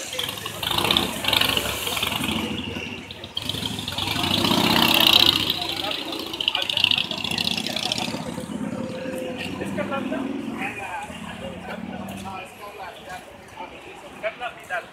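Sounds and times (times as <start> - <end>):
people talking: 0.0 - 14.9
vehicle engines running: 0.0 - 14.9.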